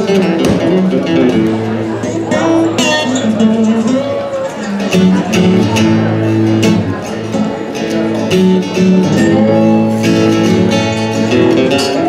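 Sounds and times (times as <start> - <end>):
acoustic guitar lead melody: 0.0 - 12.0
acoustic guitar strumming chords: 0.0 - 12.0.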